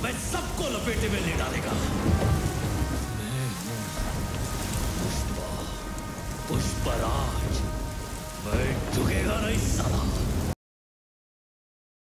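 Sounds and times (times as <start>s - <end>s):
deep rumble: 0.0s - 10.6s
musical drone: 0.0s - 10.6s
rain-like hiss: 0.0s - 10.6s.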